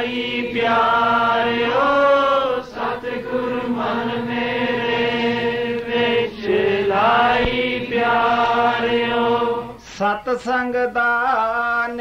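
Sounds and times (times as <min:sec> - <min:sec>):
devotional hymn chanted: 0:00.0 - 0:12.0.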